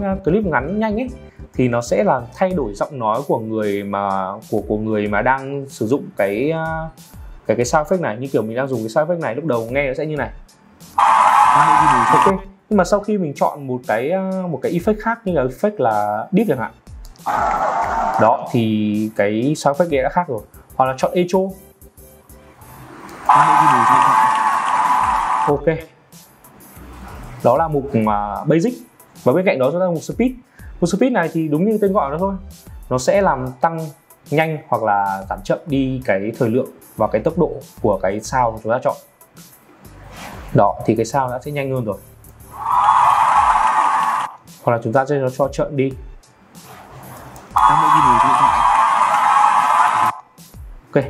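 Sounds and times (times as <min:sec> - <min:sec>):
loud dense steady sound effect: 0:10.9 - 0:12.4, 0:47.6 - 0:50.2
crowd cheering and clapping with echo: 0:17.3 - 0:18.2, 0:23.1 - 0:25.6, 0:47.6 - 0:50.2
drawn-out voice-like sounds: 0:22.9 - 0:25.6, 0:47.6 - 0:50.2.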